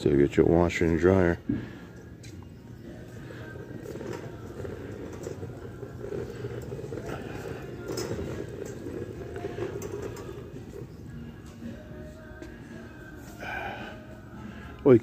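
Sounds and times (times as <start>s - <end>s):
shopping cart rolling on tiles: 2.6s - 12.3s.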